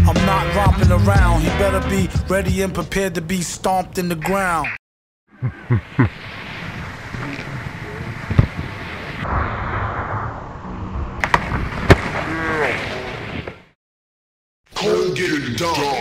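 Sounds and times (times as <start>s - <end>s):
skier landing thuds: 8.2s - 9.4s, 11.2s - 13.6s.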